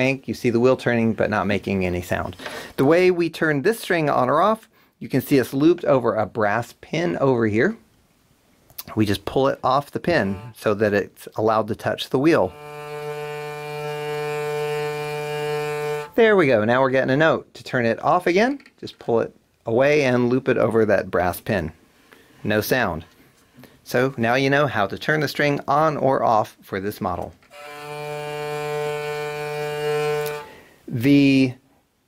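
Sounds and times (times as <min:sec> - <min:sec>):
hurdy-gurdy low drone: 0:10.0 - 0:10.6, 0:12.4 - 0:16.2, 0:27.6 - 0:30.5.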